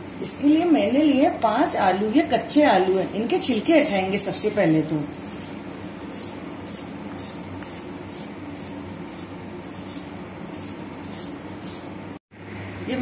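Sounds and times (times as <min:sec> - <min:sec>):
peeler scraping potato skin: 0:05.1 - 0:11.9.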